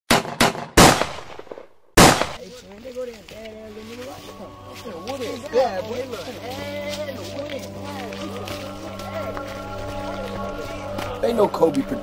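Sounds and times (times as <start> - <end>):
loud gunshots: 0.1 - 2.4.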